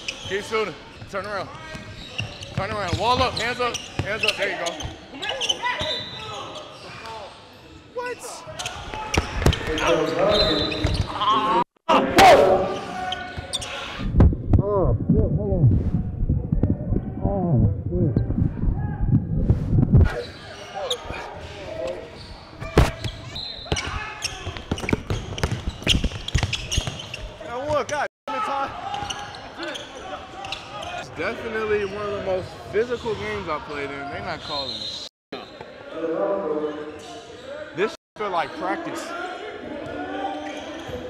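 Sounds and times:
indistinct echoing voices: 0:09.6 - 0:14.0
basketball bouncing on hardwood: 0:24.5 - 0:27.0.

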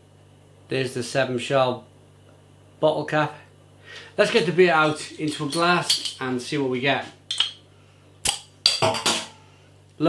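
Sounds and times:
bottle opener click: 0:07.3 - 0:07.6.

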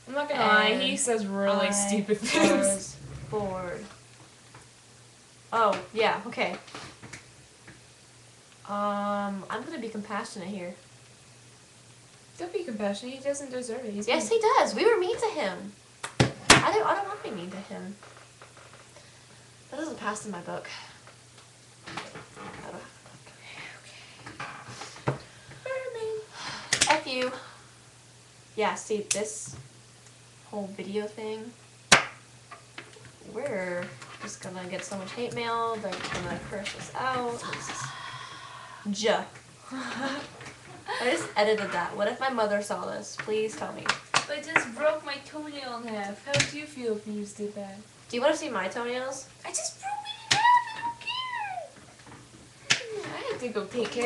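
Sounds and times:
high-pitched vocal cry: 0:49.6 - 0:51.8.

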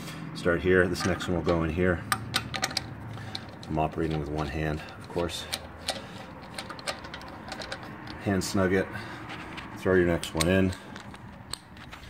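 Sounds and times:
metallic clicks of bolt threading: 0:01.0 - 0:08.3, 0:10.2 - 0:11.8.

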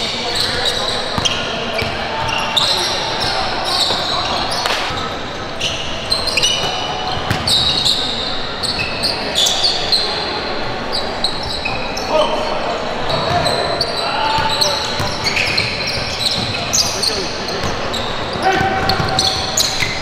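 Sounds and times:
sneakers squeaking on floor: 0:00.0 - 0:20.0
players calling out: 0:00.1 - 0:20.0
basketball bouncing: 0:07.2 - 0:07.6.

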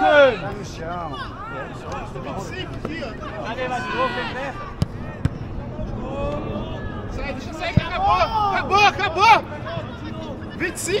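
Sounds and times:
distant players shouting: 0:00.0 - 0:11.0.

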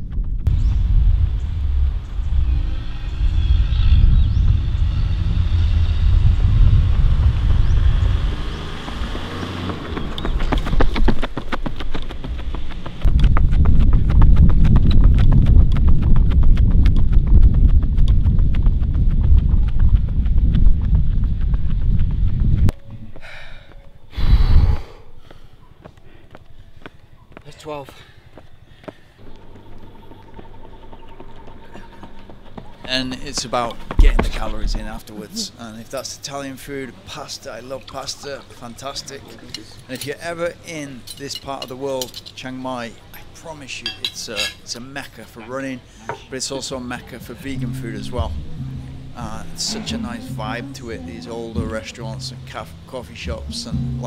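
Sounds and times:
wind rumble on microphone: 0:00.0 - 0:23.1, 0:24.1 - 0:25.0, 0:29.2 - 0:35.1
running footfalls on asphalt: 0:08.8 - 0:24.0, 0:25.2 - 0:34.9.

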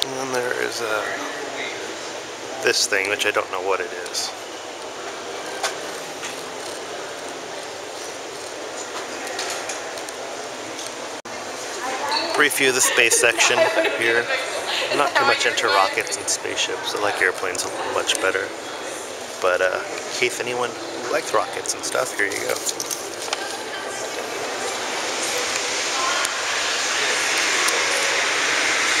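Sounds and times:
indoor hall ambient hiss: 0:00.0 - 0:29.0.

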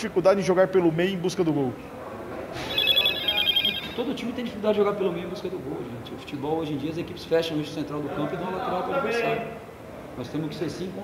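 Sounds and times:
electronic trilling ring: 0:02.6 - 0:04.2.

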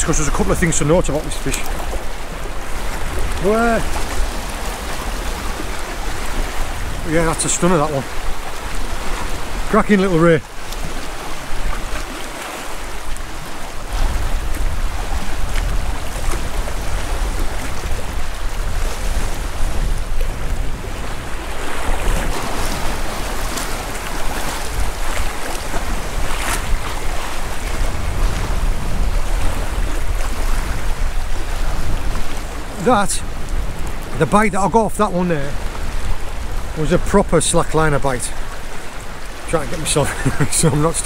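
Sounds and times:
surf washing against rocks: 0:00.0 - 0:41.0
wind buffeting microphone: 0:00.0 - 0:41.0.

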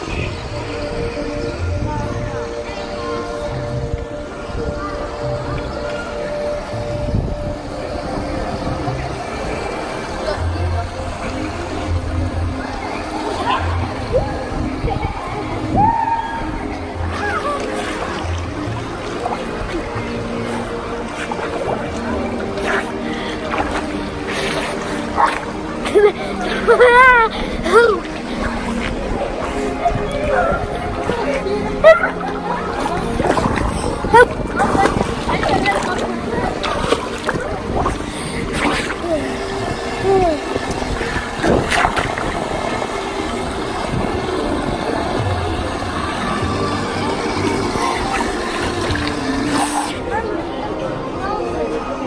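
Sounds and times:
background music with steady chords: 0:00.0 - 0:52.0
pool water splashing and lapping: 0:00.0 - 0:52.0
child laughing and shrieking: 0:25.9 - 0:28.0.

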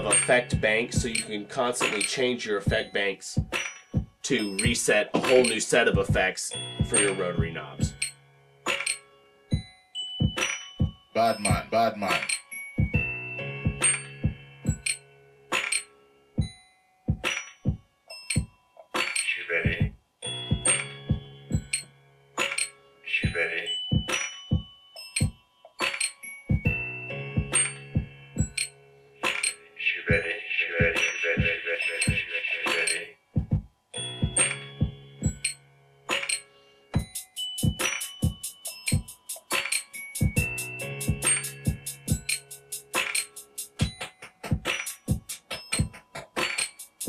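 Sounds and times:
hi-hat hits: 0:00.0 - 0:02.8, 0:04.3 - 0:08.1, 0:37.0 - 0:47.0
kick drum hits: 0:03.4 - 0:04.1, 0:33.4 - 0:35.4.

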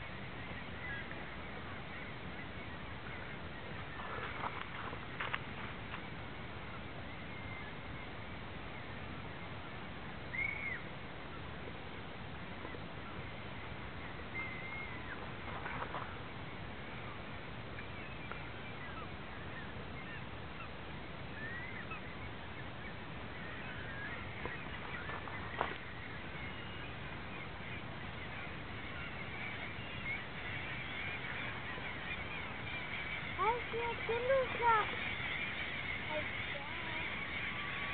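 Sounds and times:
gulls calling: 0:00.0 - 0:09.5, 0:10.3 - 0:11.5, 0:12.6 - 0:37.9.

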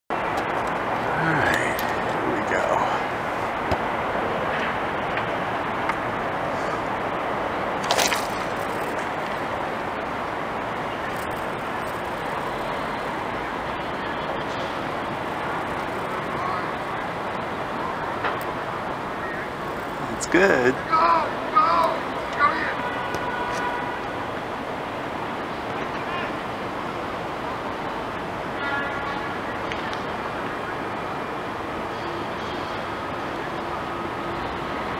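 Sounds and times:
traffic noise: 0:00.1 - 0:34.9
background voices: 0:01.0 - 0:03.5.

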